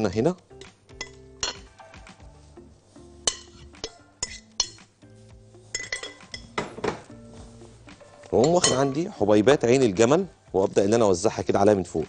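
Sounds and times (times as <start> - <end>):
soft background music: 0.0 - 12.0
glass bowl clinking on glass dish: 1.0 - 1.7, 3.3 - 4.8, 5.8 - 6.7, 8.4 - 9.0.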